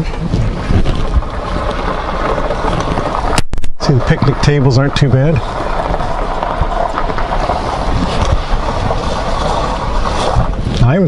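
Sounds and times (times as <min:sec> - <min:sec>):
vehicle driving on gravel: 0:00.0 - 0:11.0.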